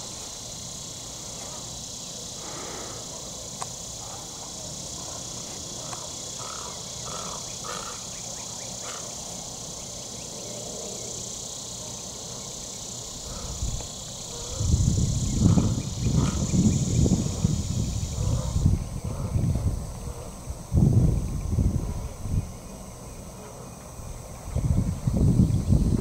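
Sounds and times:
high-pitched insect chorus: 0:00.0 - 0:26.0
wind buffeting microphone: 0:13.2 - 0:22.9, 0:24.0 - 0:26.0.

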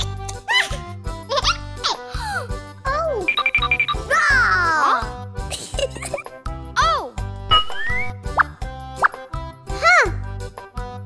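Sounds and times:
children's background music: 0:00.0 - 0:11.0.

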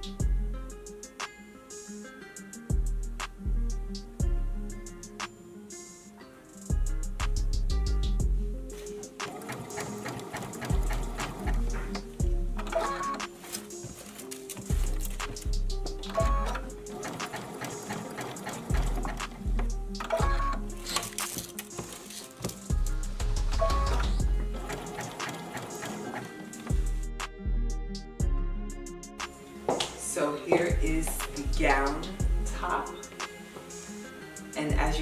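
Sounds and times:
music with deep bass: 0:00.0 - 0:01.2, 0:02.7 - 0:05.2, 0:06.7 - 0:09.1, 0:10.7 - 0:13.3, 0:14.7 - 0:16.9, 0:18.7 - 0:21.2, 0:22.7 - 0:24.8, 0:26.7 - 0:29.4, 0:30.7 - 0:33.1, 0:34.7 - 0:35.0
sewing machine stitching: 0:09.2 - 0:12.0, 0:16.1 - 0:19.4, 0:23.7 - 0:26.6.

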